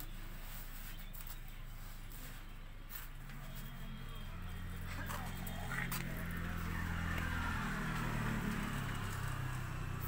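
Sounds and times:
engine humming: 1.6 - 10.0.

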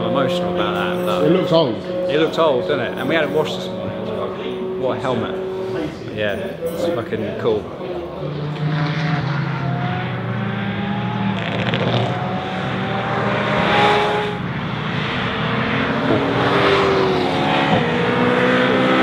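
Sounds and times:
sports car engines revving: 0.0 - 19.0.

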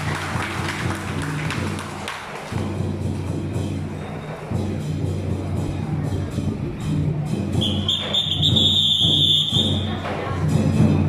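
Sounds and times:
procession drum music: 0.0 - 11.0
high-pitched whistle-like tone: 7.6 - 9.9.

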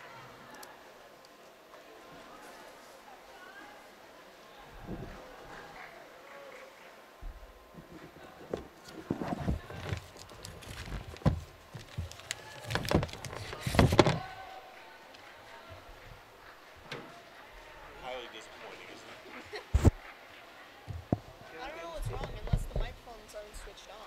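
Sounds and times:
faint voices: 0.0 - 24.0
knocks and thumps: 7.2 - 14.3, 20.9 - 23.0.

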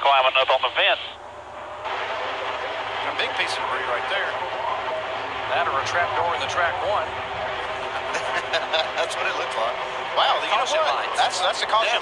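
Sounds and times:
distant stock cars running: 0.1 - 12.0.

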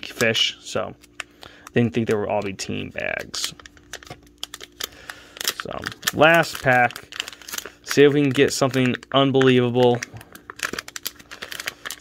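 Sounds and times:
faint steady hum: 0.0 - 12.0
plastic wrapper crackling: 0.0 - 12.0.

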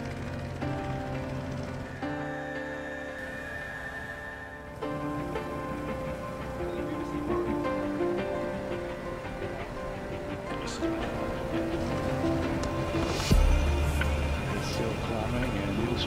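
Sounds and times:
background music with sustained chords: 0.0 - 16.0.

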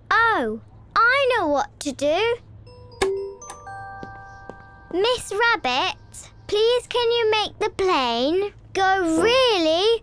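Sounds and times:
chime: 2.7 - 6.5.

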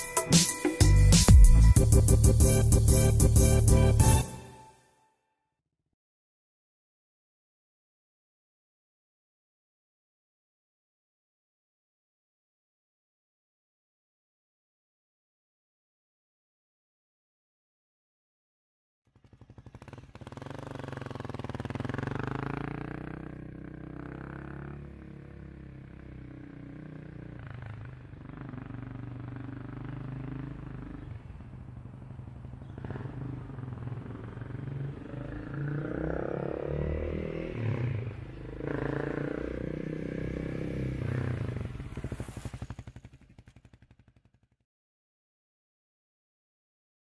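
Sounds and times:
motorcycle engine rumbling: 19.1 - 44.6.

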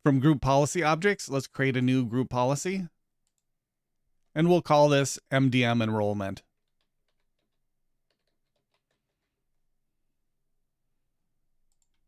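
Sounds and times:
faint keyboard typing: 3.2 - 3.5, 6.5 - 9.6, 11.6 - 12.0.

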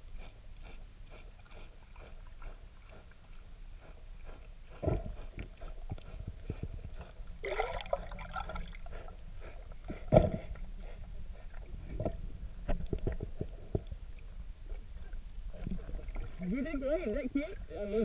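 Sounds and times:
manatee chewing clicks and crunches: 0.1 - 16.2
heavy underwater thumps: 10.0 - 10.6.

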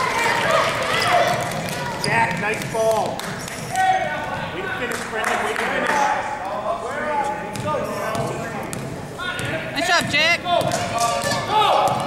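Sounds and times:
voices of spectators and players: 0.0 - 12.0
basketball bouncing on wooden floor: 7.5 - 12.0.

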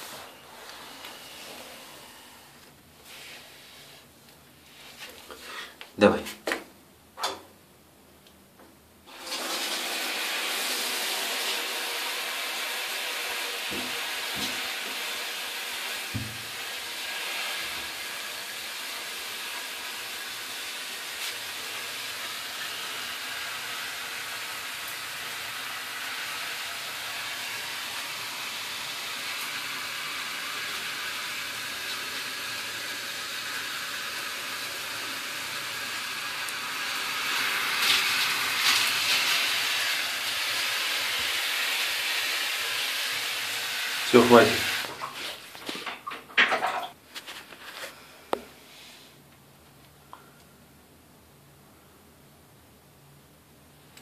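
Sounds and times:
shower water spray hissing: 0.0 - 4.0, 9.1 - 45.5.

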